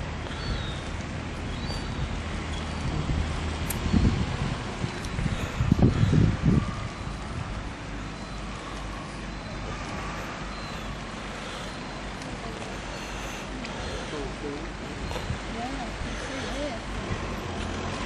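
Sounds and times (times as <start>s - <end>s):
wind buffeting microphone: 0.0s - 11.1s, 14.3s - 18.0s
low engine hum: 0.0s - 18.0s.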